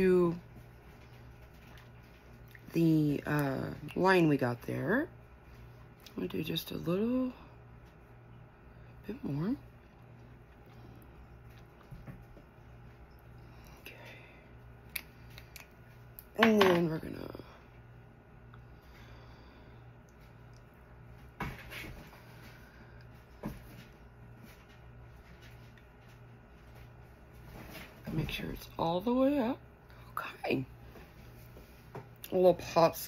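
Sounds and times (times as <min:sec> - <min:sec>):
woman speaking softly: 0:00.0 - 0:00.5, 0:02.6 - 0:05.2, 0:06.1 - 0:07.6, 0:09.0 - 0:09.7, 0:16.3 - 0:17.7, 0:28.0 - 0:30.8, 0:32.2 - 0:33.0
low steady hum: 0:00.0 - 0:33.0.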